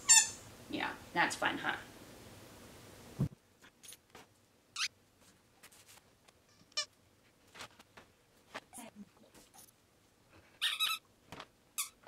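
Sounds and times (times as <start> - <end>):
squeaky dog toy squeaks: 0.0 - 0.4, 10.6 - 11.0, 11.8 - 12.0.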